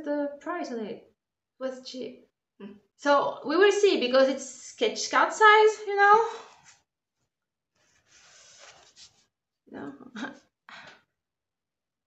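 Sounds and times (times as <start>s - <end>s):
faint rubbing rustle: 7.8s - 9.3s.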